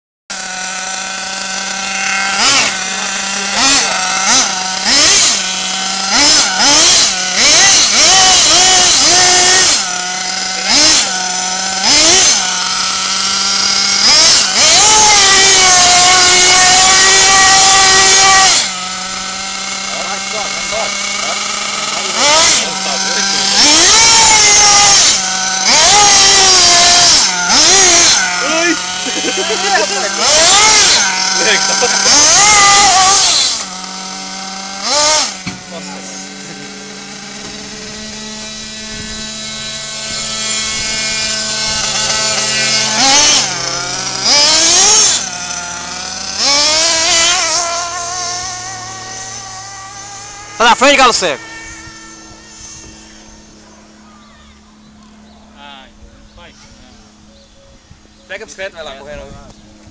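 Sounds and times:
nitro engine revving: 0.3 - 57.3.

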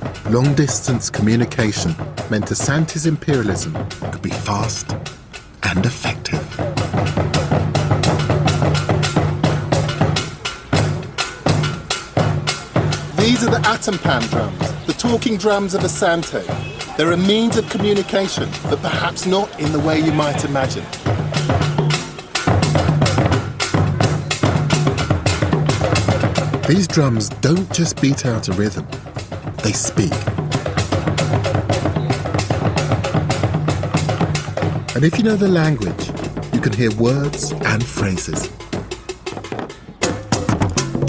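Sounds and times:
talking drums struck with sticks: 0.0 - 41.0.

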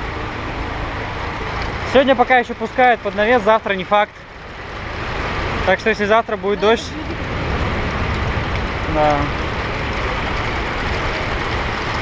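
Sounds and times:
heavy rain pouring: 0.0 - 12.0.

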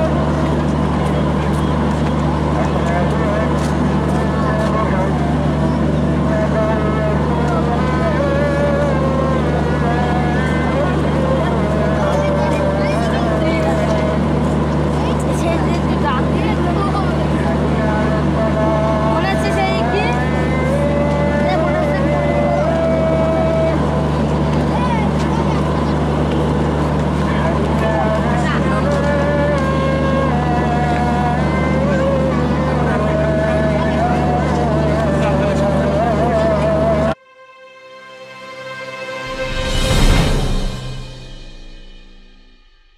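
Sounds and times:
crowd chatter and calls: 0.0 - 37.2, 38.3 - 42.0
diesel train engine humming: 0.0 - 42.9.

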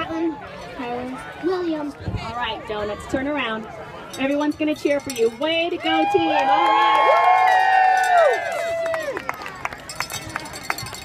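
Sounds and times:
shouted cheer: 5.8 - 9.8
small crowd clapping: 6.2 - 11.0.

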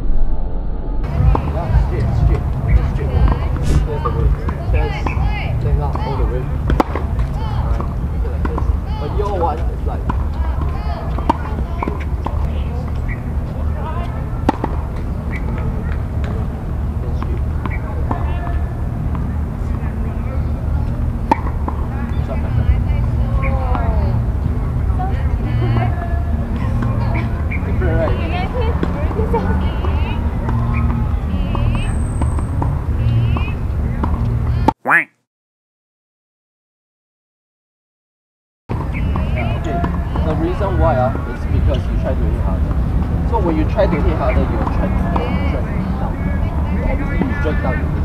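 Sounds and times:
low rumble: 0.0 - 8.9
outdoor background hum: 0.0 - 34.7
tennis ball bouncing on court: 1.1 - 13.3, 13.9 - 16.5, 17.2 - 23.9, 26.6 - 35.0, 43.9 - 45.5
racket striking tennis ball: 1.2 - 5.2, 5.9 - 9.4, 10.0 - 13.2, 14.0 - 16.4, 21.2 - 22.1
brief voice: 34.8 - 35.1.

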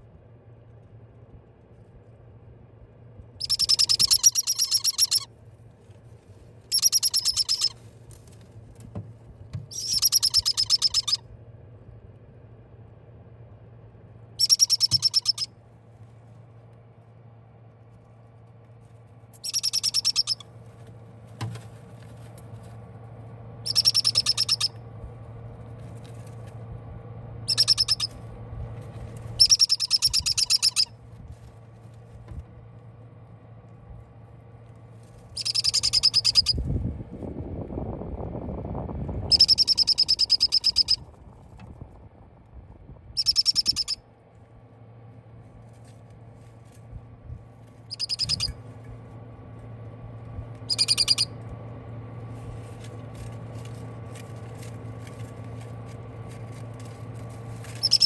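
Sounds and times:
faint low hum: 0.0 - 58.0
parrot chicks chirping: 3.4 - 5.3, 6.7 - 7.7, 9.7 - 11.2, 14.4 - 15.5, 19.4 - 20.4, 23.6 - 24.8, 27.5 - 28.2, 29.4 - 30.9, 35.4 - 36.6, 39.3 - 41.0, 43.2 - 44.0, 47.9 - 48.6, 50.6 - 51.4, 57.8 - 58.0.

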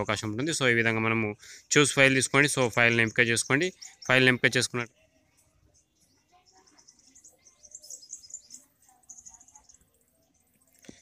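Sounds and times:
faint bird chirping: 0.0 - 11.0.

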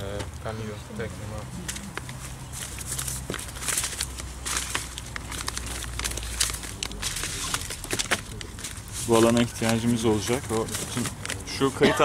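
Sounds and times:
hands mixing damp soil: 0.0 - 11.8.

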